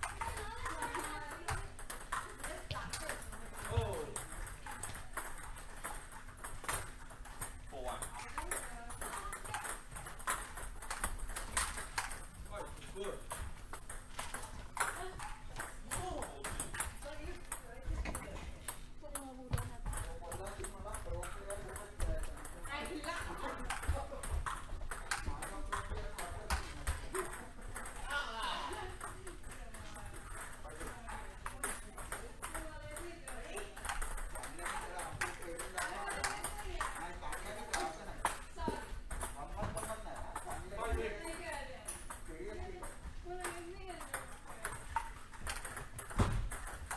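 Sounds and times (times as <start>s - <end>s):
table tennis balls clicking: 0.0s - 46.9s
people talking: 0.2s - 1.8s.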